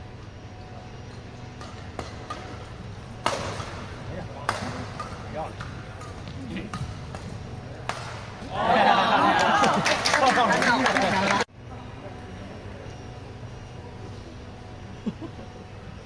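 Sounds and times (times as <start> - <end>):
badminton rackets hitting shuttlecock: 1.5 - 8.4
voices: 7.8 - 14.0
crowd cheering and chatter: 8.3 - 14.0.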